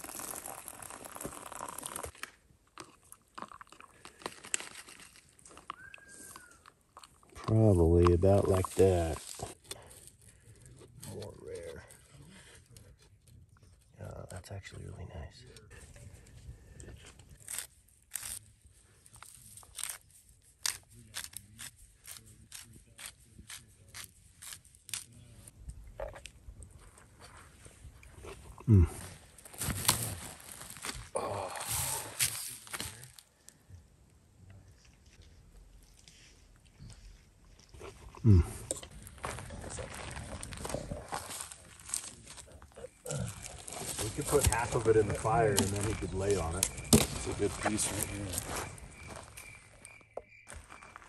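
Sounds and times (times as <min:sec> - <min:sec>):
man chewing and crunching: 0:00.0 - 0:10.2, 0:24.0 - 0:30.0, 0:34.8 - 0:44.0
man grunting: 0:28.6 - 0:29.1, 0:31.2 - 0:32.1, 0:38.2 - 0:38.6.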